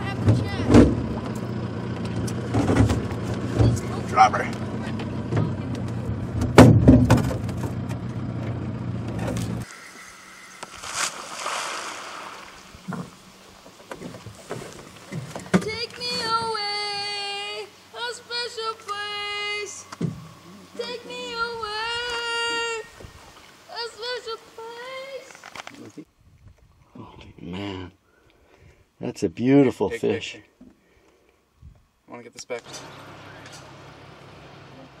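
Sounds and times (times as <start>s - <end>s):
low engine hum: 0.0s - 23.5s, 32.6s - 35.0s
steady hiss: 9.6s - 26.1s.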